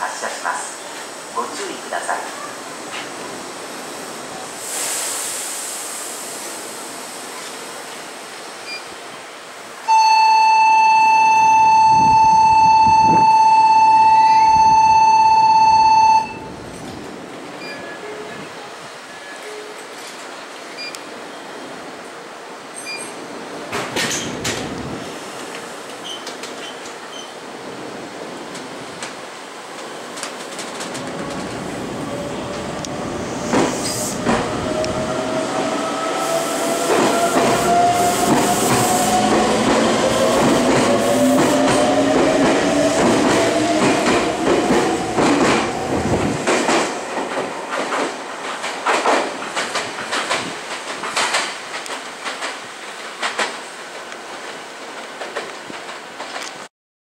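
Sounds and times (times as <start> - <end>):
departure buzzer: 9.9 - 16.5.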